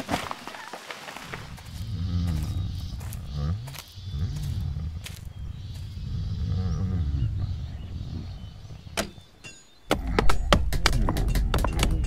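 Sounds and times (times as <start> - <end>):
deep voice groaning: 6.0 - 8.6.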